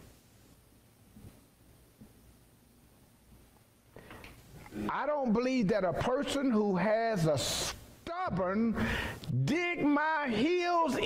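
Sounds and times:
man speaking: 4.8 - 11.0.

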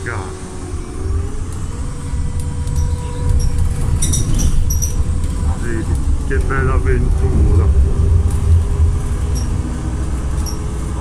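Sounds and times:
bus engine and road rumble: 0.0 - 11.0
held whine: 0.0 - 11.0
high squeaks or rattles: 2.6 - 5.5, 9.2 - 9.7, 10.3 - 10.8.

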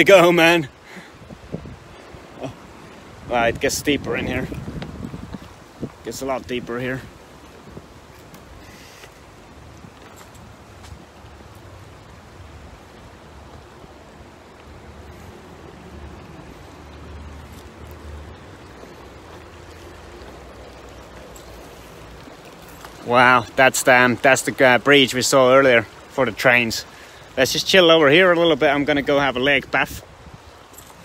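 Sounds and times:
stream running over rocks: 0.0 - 31.0
wind rumbling on microphone: 1.1 - 23.6, 29.6 - 31.0.

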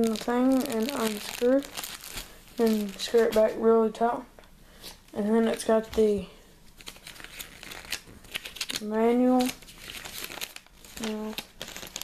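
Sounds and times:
paper rustling and crinkling: 0.0 - 3.5, 6.8 - 12.0.

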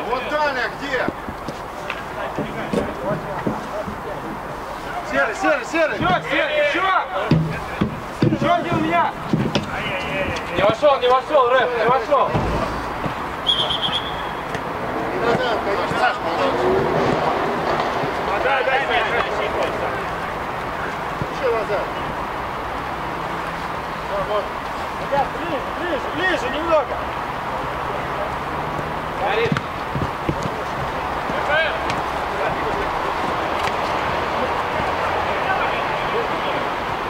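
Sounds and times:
players calling and shouting: 0.0 - 37.0
referee's whistle blast: 13.4 - 14.5.

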